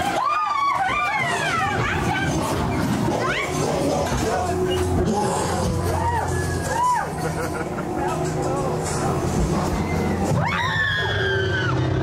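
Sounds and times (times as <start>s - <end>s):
faint voices: 0.0s - 11.5s.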